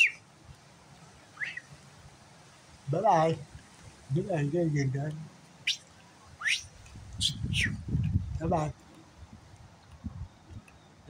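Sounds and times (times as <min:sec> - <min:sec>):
bird chirping: 0:00.0 - 0:00.2, 0:01.3 - 0:01.7, 0:05.0 - 0:09.0.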